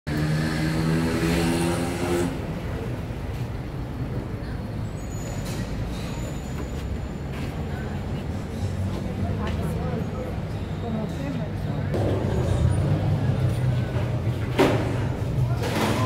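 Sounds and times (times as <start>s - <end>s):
low traffic rumble: 0.1s - 16.0s
heavy vehicle engine drone: 11.8s - 15.6s.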